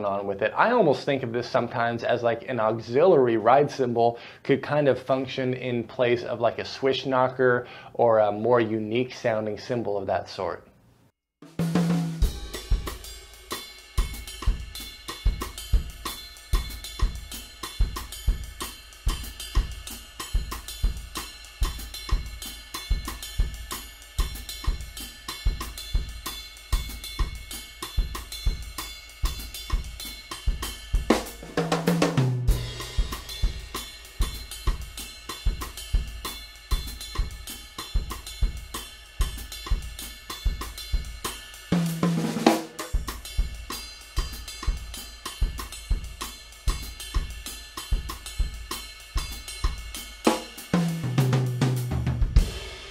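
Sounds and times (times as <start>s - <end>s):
kick and snare drums: 11.4s - 52.9s
tom drum fill: 11.4s - 52.9s
ride cymbal pattern: 11.6s - 52.9s.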